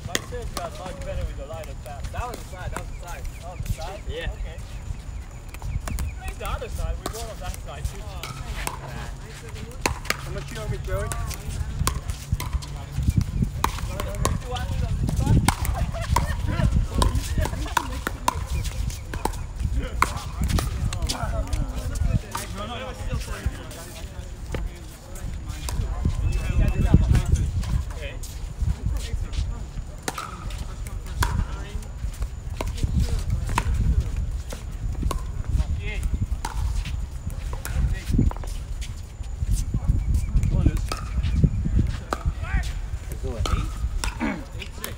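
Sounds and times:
paddles hitting plastic ball: 5.5 - 19.4.

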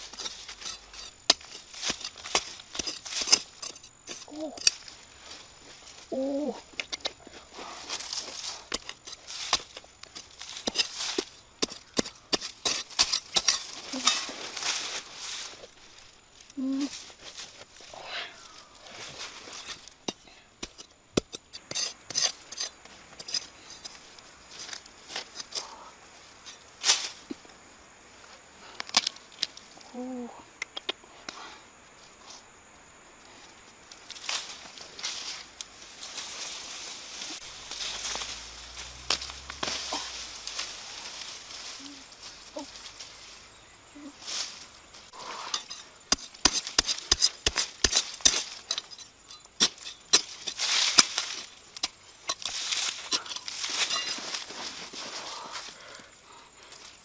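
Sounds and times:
clicks of dirt and sticks: 0.0 - 27.5, 28.2 - 29.9, 30.5 - 32.4, 33.5 - 43.4, 44.1 - 57.0
hands scratching in dry soil: 34.0 - 43.5.

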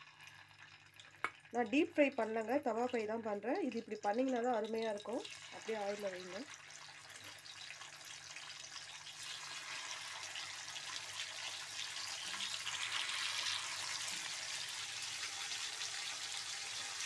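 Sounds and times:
meat sizzling in hot oil: 0.0 - 2.2, 3.5 - 17.0.

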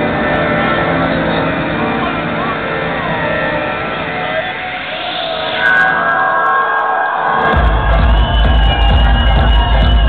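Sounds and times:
loud techno music: 3.0 - 10.0.

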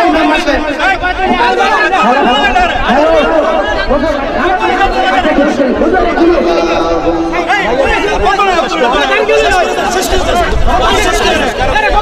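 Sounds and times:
crowd chatter: 0.0 - 12.0
men shouting and arguing: 0.0 - 12.0.

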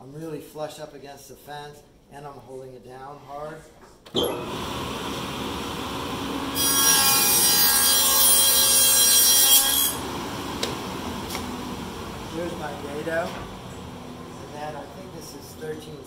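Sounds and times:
table saw running: 4.2 - 15.2
saw cutting wood: 6.2 - 13.2.

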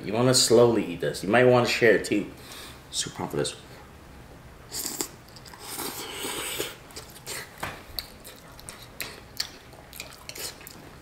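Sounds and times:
person slurping noodles: 4.7 - 7.5
chewing with mouth clicks: 4.8 - 11.0.

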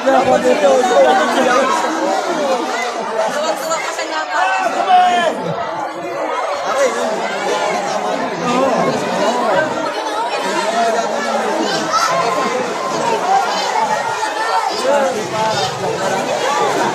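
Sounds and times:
crowd chattering: 0.0 - 16.9.

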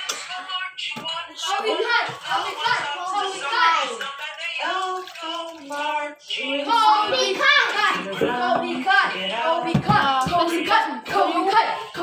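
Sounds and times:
young person singing: 0.0 - 12.0
water pouring into jar: 3.8 - 8.5.

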